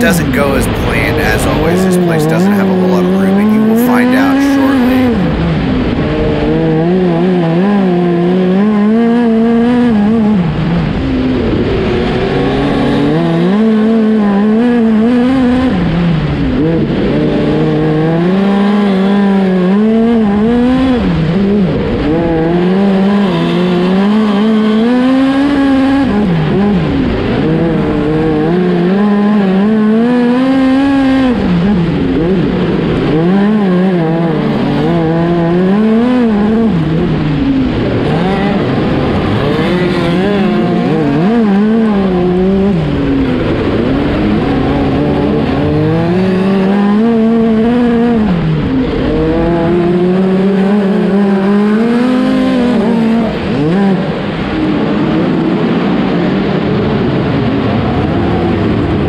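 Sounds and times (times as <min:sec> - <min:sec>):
nearby car engines: 0:00.0 - 0:59.0
race car engine at speed: 0:00.0 - 0:59.0.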